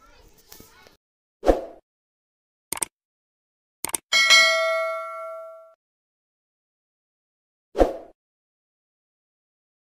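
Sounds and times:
mouse double click: 2.7s - 2.9s
notification bell ding: 4.1s - 5.8s.

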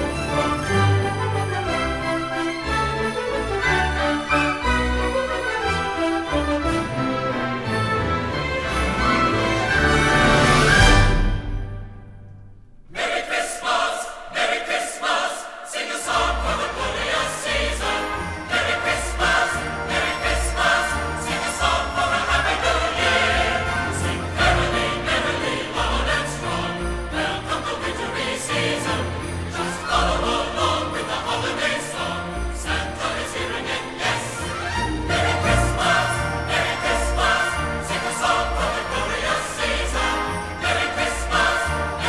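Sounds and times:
choir singing with orchestra: 0.0s - 12.2s, 12.8s - 42.0s
orchestral christmas music: 0.0s - 42.0s.

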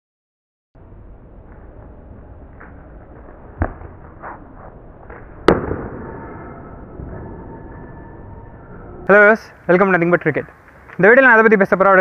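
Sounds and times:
outdoor background noise: 0.8s - 12.0s.

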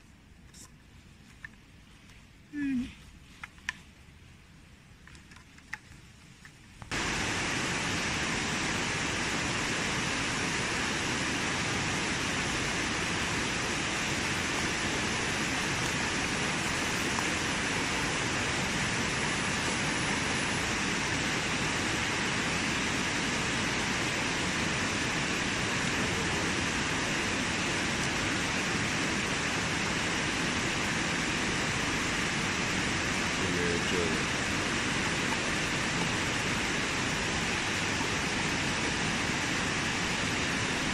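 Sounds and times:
labeling machine hissing: 12.1s - 20.4s.

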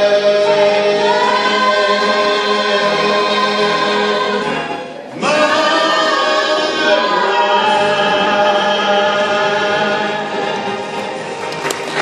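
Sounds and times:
vocal group singing in harmony: 0.0s - 12.0s.

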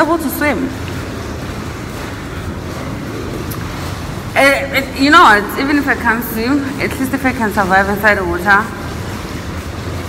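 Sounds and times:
indoor pool hall ambience: 0.0s - 10.0s.

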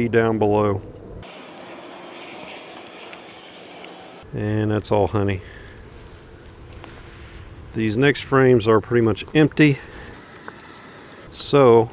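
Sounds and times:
honey bees buzzing: 1.2s - 4.3s, 10.1s - 11.3s.

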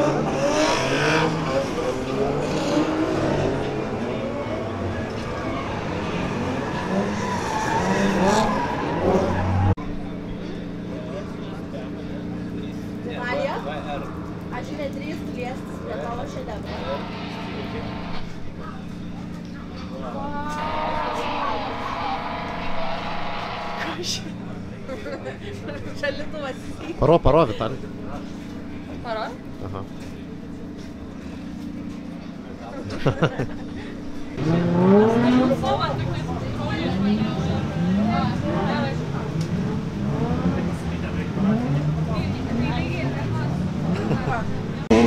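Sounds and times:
car engines revving: 0.0s - 45.0s
voices: 0.0s - 45.0s
car engine running: 7.8s - 24.8s
tyre squeal: 20.0s - 24.0s.

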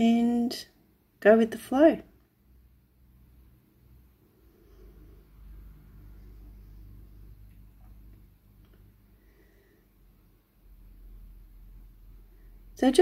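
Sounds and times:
steady low hum: 2.0s - 13.0s.

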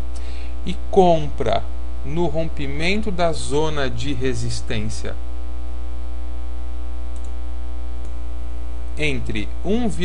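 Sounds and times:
person speaking: 0.0s - 5.2s, 8.8s - 10.0s
electrical mains hum: 0.0s - 10.0s
faint electrical buzz: 0.0s - 10.0s.

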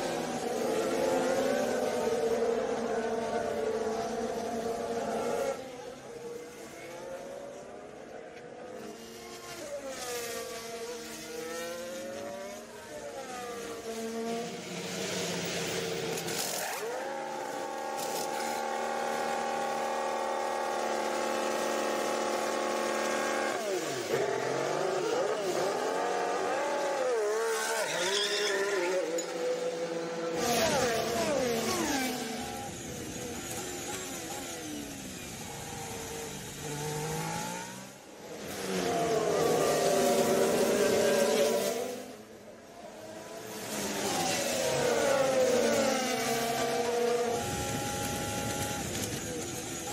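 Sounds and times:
racing car engines: 0.0s - 49.9s.

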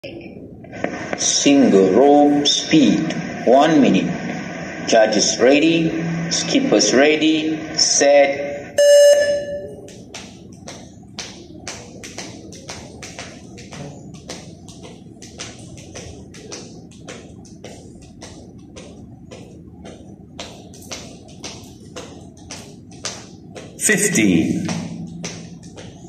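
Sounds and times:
jump rope ticking on tiled floor: 9.6s - 26.0s.

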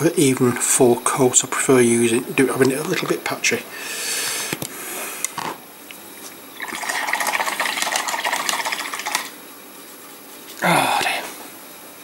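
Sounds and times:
water spilling and splashing: 6.6s - 9.2s.

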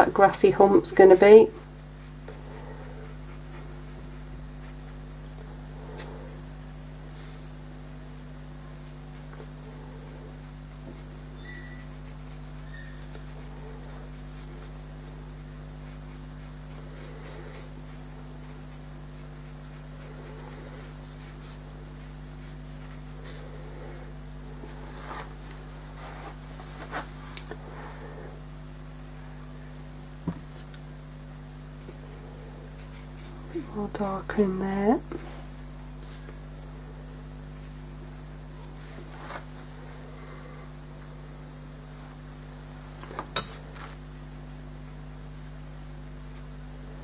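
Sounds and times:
low electrical hum: 0.0s - 47.0s
paintbrush scratching on paper: 0.4s - 6.4s, 7.0s - 28.2s.

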